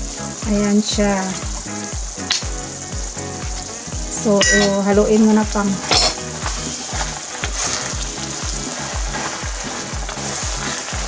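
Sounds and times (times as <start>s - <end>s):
background music with steady beat: 0.0s - 11.0s
rice sizzling in a skillet: 0.0s - 11.0s
wooden spoon stirring: 5.7s - 11.0s.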